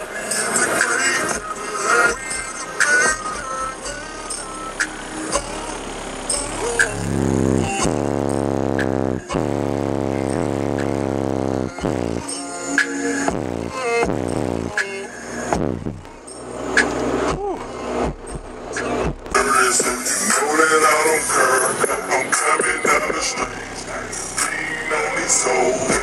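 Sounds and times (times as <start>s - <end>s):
bass-heavy music through subwoofers: 0.0s - 26.0s.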